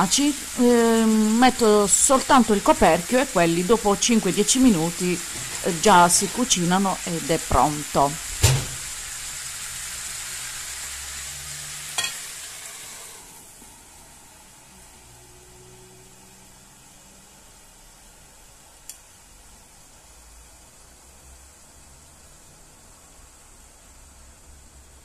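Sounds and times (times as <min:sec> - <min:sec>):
food sizzling in a frying pan: 0:00.0 - 0:25.0
glass lid clanking: 0:12.0 - 0:12.3.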